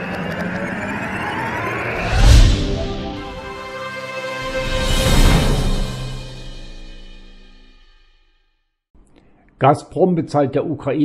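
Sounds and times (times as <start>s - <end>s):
loud whooshing rush with rising tone: 0.0s - 7.9s.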